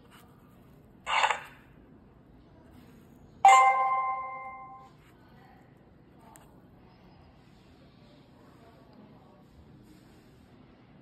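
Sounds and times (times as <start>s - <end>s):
electronic bell-like chime: 3.5s - 4.8s.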